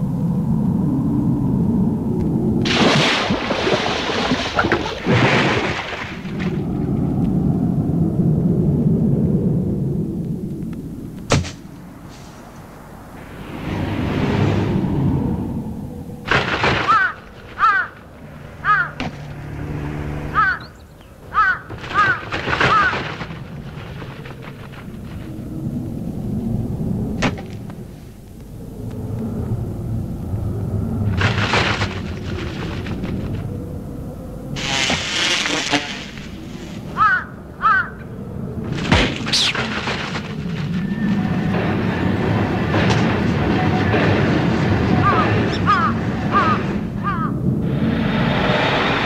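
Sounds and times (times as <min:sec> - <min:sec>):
faint low drone: 0:00.0 - 0:02.9, 0:06.3 - 0:16.5, 0:17.3 - 0:21.3, 0:24.3 - 0:39.2
low background rumble: 0:00.0 - 0:34.8
falling whoosh: 0:11.6 - 0:21.3
crow cawing: 0:16.8 - 0:19.3, 0:20.1 - 0:23.1, 0:37.0 - 0:38.0, 0:45.0 - 0:47.4.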